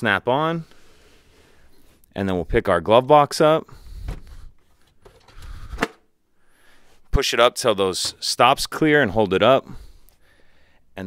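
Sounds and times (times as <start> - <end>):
soft rubbing and handling noise: 3.7 - 5.8.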